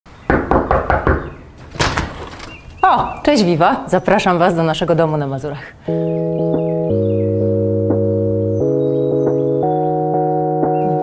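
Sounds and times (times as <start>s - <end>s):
knocking on door: 0.3s - 2.6s.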